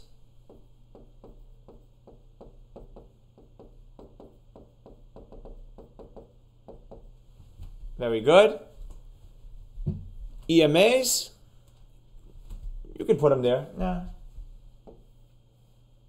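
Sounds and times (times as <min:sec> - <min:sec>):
stylus tapping on touchscreen: 0:00.4 - 0:07.2.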